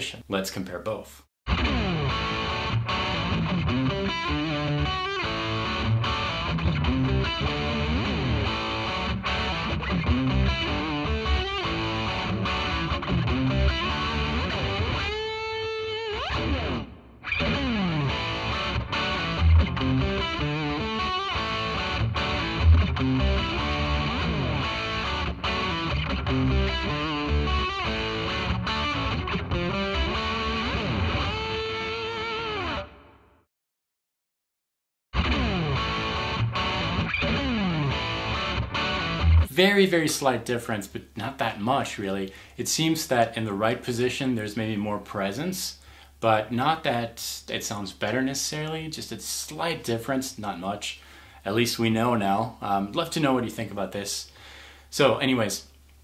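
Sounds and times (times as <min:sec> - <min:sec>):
distorted electric guitar: 0:01.5 - 0:33.2, 0:35.2 - 0:39.5.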